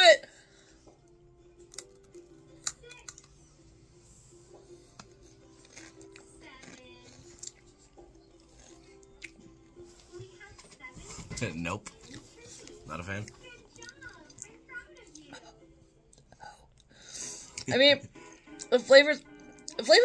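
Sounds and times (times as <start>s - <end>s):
person chewing crunchy chip: 5.6s - 9.4s.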